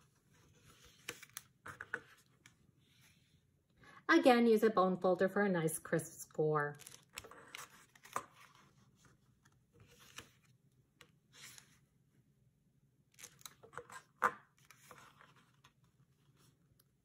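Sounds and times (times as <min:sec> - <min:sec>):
cardstock being folded and creased: 0:00.5 - 0:02.5, 0:06.7 - 0:10.5, 0:13.1 - 0:16.5.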